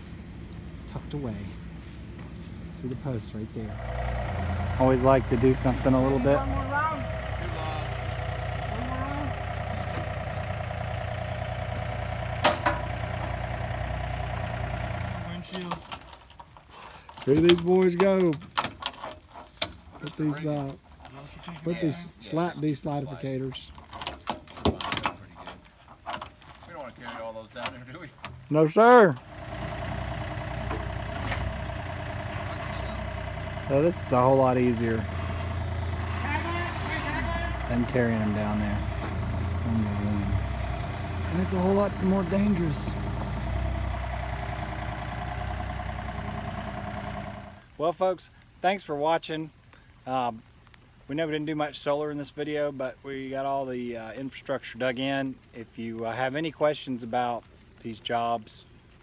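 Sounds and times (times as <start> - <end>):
diesel engine running: 0.0 - 15.8, 28.9 - 47.7.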